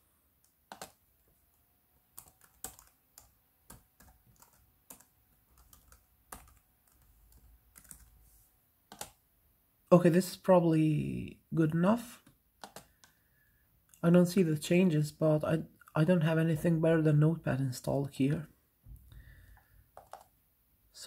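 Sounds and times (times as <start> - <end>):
laptop keyboard clicks: 0.7 - 1.0, 8.9 - 9.2, 12.6 - 13.2, 19.9 - 20.3.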